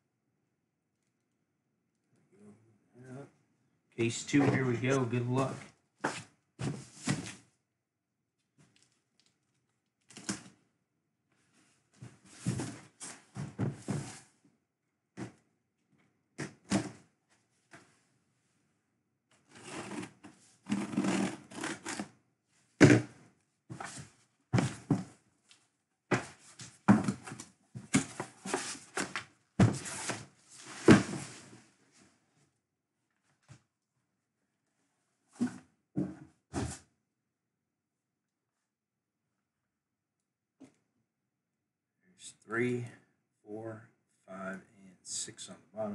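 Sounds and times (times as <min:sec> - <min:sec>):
cardboard knocks and rustles: 0:12.1 - 0:14.2, 0:24.6 - 0:25.2, 0:26.1 - 0:30.2.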